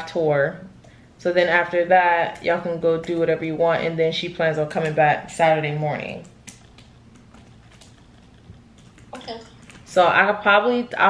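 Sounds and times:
typing on computer keyboard: 0:06.0 - 0:09.9.

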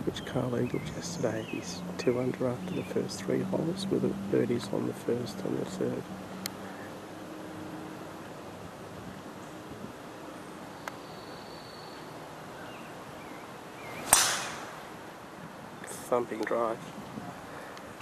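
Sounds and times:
golf club swing rush: 0:13.8 - 0:15.2
club cracking on golf ball: 0:13.9 - 0:15.0.

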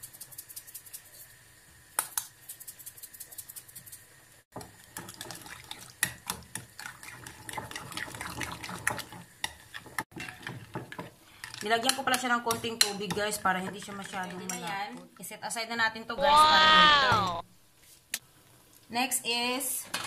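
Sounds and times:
spoon stirring in glass bowl: 0:04.6 - 0:14.8.

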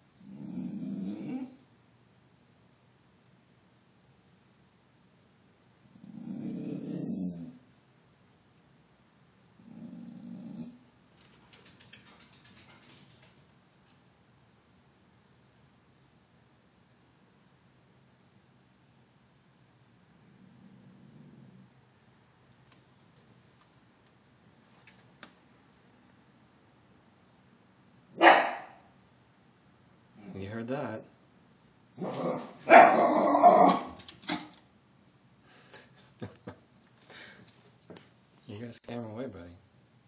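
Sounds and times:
dog growling low: 0:00.2 - 0:01.6, 0:05.9 - 0:07.6, 0:09.6 - 0:10.9, 0:20.1 - 0:21.8, 0:32.0 - 0:34.5
dog barking: 0:28.2 - 0:28.9, 0:32.0 - 0:34.4.

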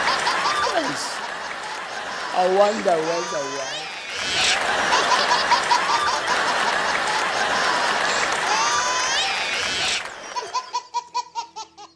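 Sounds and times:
high-pitched laugh: 0:00.0 - 0:02.4, 0:03.1 - 0:11.9
crowd laughing: 0:00.0 - 0:11.9.

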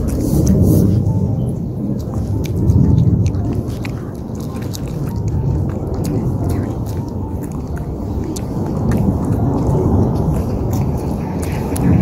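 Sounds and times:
dog chewing with crunching clicks: 0:00.0 - 0:12.0
loud low rumble: 0:00.0 - 0:12.0.

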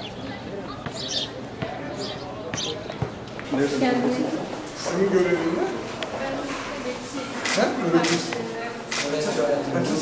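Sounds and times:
indistinct voices of people: 0:00.0 - 0:10.0.

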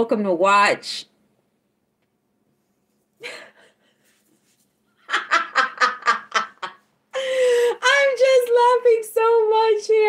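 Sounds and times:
woman laughing: 0:03.2 - 0:04.1, 0:05.0 - 0:08.0.

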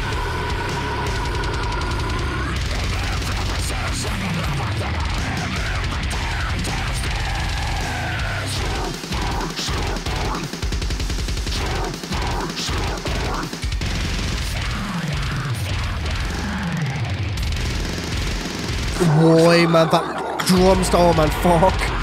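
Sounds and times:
harsh vocals: 0:00.0 - 0:10.6, 0:11.5 - 0:13.7, 0:14.4 - 0:17.4, 0:18.9 - 0:22.0
distorted guitars: 0:00.0 - 0:22.0
fast heavy drumming: 0:00.0 - 0:22.0.

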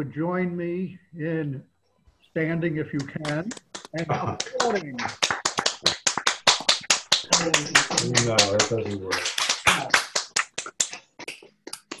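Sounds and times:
hand clapping: 0:03.0 - 0:12.0.

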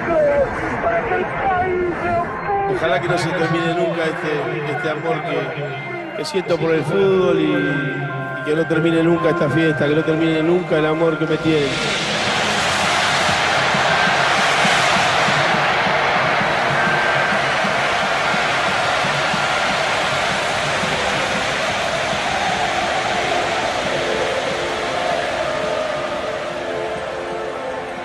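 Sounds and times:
sustained music notes: 0:10.2 - 0:28.0.

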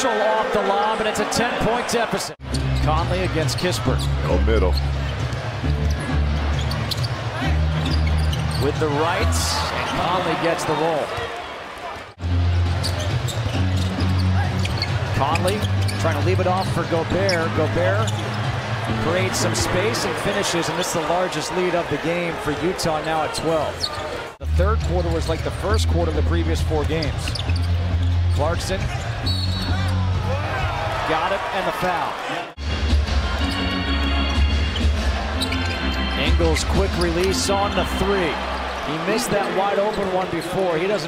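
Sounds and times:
arena noise: 0:00.0 - 0:41.0
basketball play on court: 0:00.0 - 0:41.0
crowd noise: 0:00.0 - 0:41.0
low bass arena music: 0:02.4 - 0:09.9, 0:12.2 - 0:21.2, 0:24.4 - 0:31.1, 0:32.6 - 0:39.4
arena music: 0:12.2 - 0:23.2, 0:32.6 - 0:41.0.

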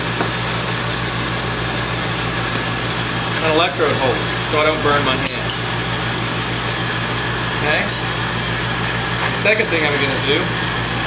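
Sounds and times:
gas burners rushing: 0:00.0 - 0:11.0
low blower hum: 0:00.0 - 0:11.0.

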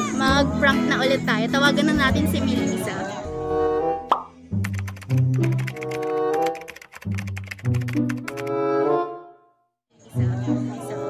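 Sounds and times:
plop sound effect: 0:04.1 - 0:04.4.

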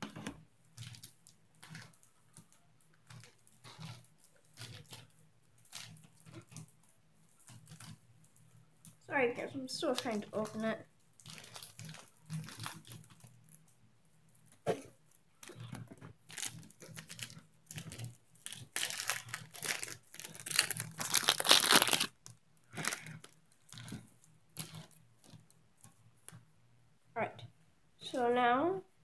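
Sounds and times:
wrapper crinkling and tearing: 0:00.8 - 0:06.7, 0:09.7 - 0:13.6, 0:15.4 - 0:25.5.

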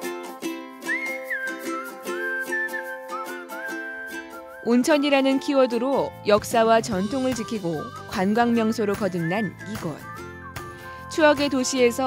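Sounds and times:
plucked string notes: 0:00.0 - 0:11.6
whistled melody: 0:00.5 - 0:06.0, 0:07.0 - 0:12.0.

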